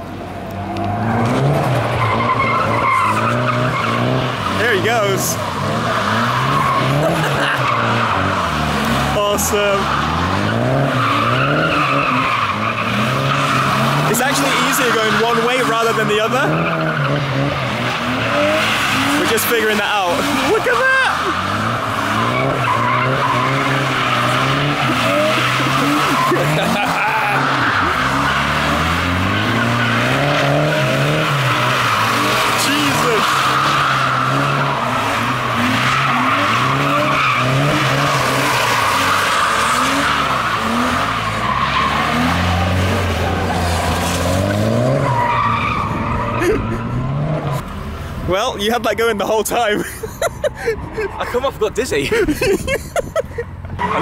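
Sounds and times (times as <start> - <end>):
car engine revving: 0.0 - 54.0
tyres squealing: 0.9 - 47.7.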